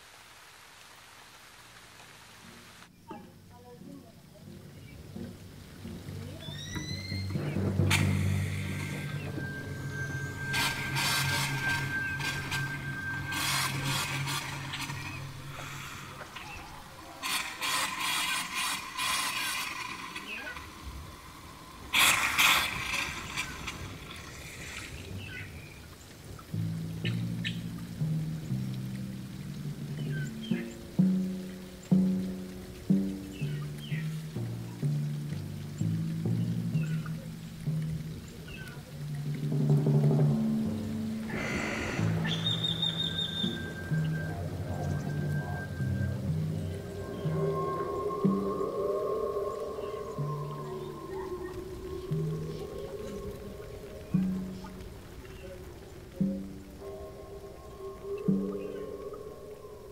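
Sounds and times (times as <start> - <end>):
water splashing: 0.0 - 59.9
slow music of low held notes: 1.5 - 59.9.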